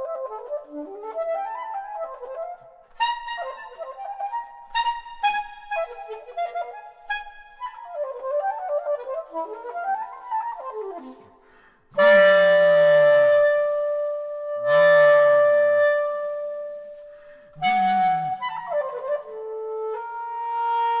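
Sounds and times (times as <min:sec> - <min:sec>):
soprano saxophone playing fast runs: 0:03.0 - 0:11.2, 0:12.0 - 0:17.0, 0:17.6 - 0:21.0.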